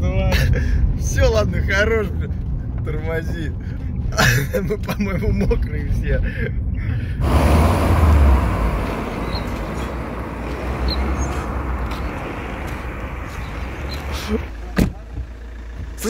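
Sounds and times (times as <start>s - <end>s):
cars driving past: 7.2s - 16.0s.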